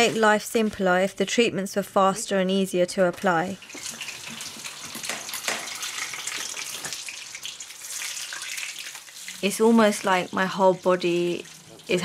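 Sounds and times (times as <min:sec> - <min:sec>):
water running and splashing: 0:03.6 - 0:12.0.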